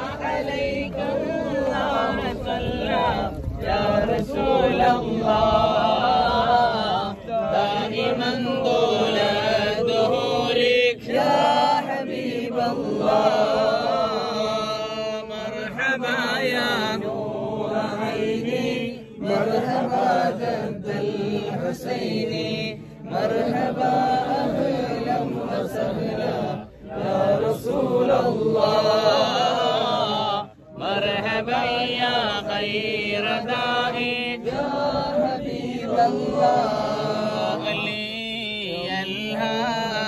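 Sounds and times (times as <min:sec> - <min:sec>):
men chanting together: 0:00.0 - 0:40.0.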